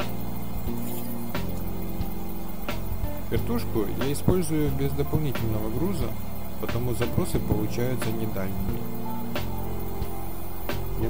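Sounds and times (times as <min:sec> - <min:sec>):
low held music chords: 0:00.0 - 0:11.0.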